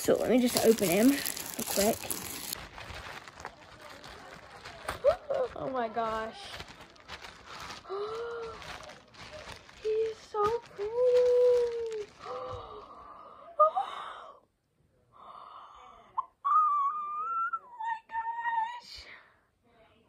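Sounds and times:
plastic bag crinkling: 0.0 - 12.8.

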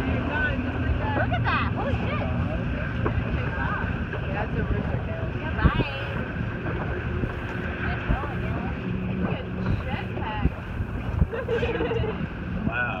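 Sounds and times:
boat engine rumble: 0.0 - 13.0
wind buffeting microphone: 0.0 - 13.0.

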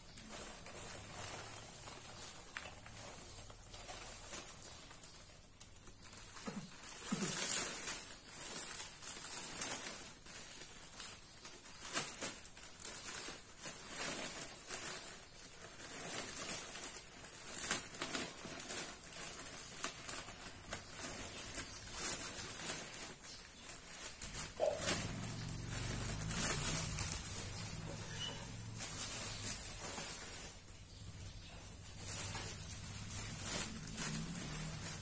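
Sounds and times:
dry grass rustling: 0.0 - 35.0
plastic bag crackling: 0.0 - 35.0.

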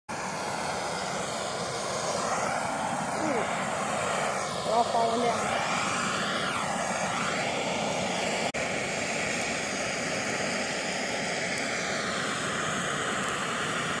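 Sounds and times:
gas torch flame hissing: 0.1 - 14.0.

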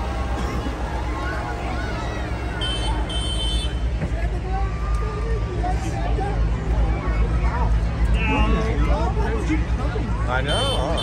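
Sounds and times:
crowd chatter: 0.0 - 11.0
tractor engine: 0.0 - 11.0.

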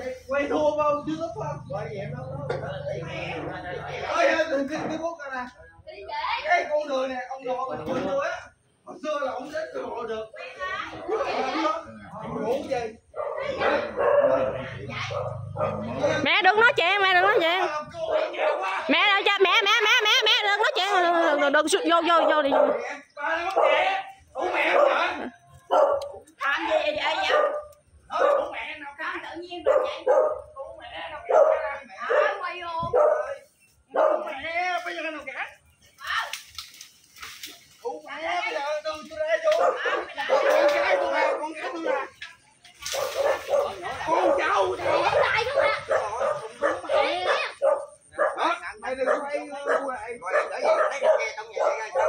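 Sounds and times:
people shouting in argument: 13.3 - 25.3, 38.2 - 42.2, 43.2 - 48.6.

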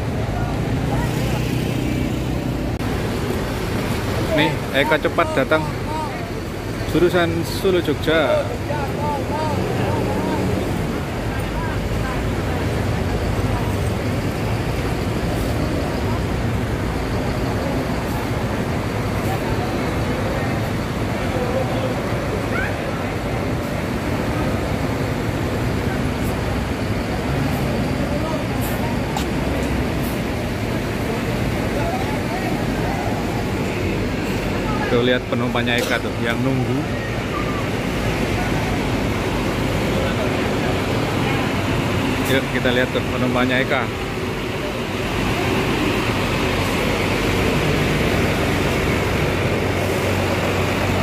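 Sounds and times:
bus engines running: 0.0 - 51.0
voices of waiting crowd: 0.0 - 51.0.

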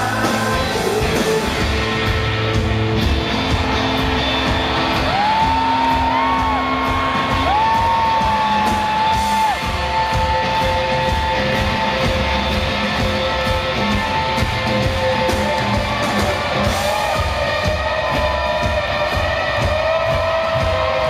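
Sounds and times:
drums with cymbal beat: 0.0 - 21.0.

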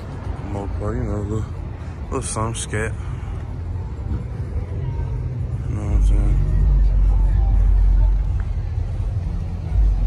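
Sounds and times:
car engines rumbling: 0.0 - 10.0.

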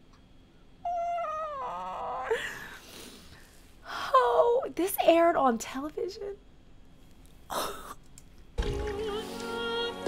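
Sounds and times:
woman squealing laughter: 2.0 - 2.8.

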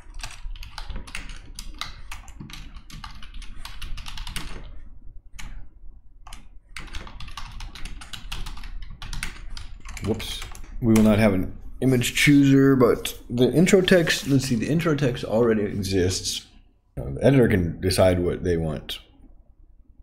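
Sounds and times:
typing on computer keyboard: 0.0 - 5.6, 6.2 - 11.2.

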